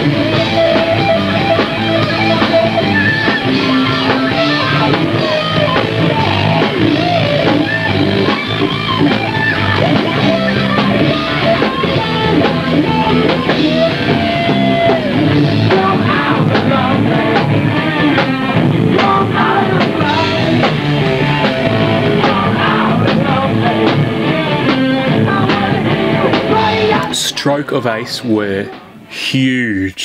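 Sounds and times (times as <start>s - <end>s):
electric guitar: 0.0s - 27.4s
rock band playing: 0.0s - 29.2s
drum kit: 0.0s - 30.0s.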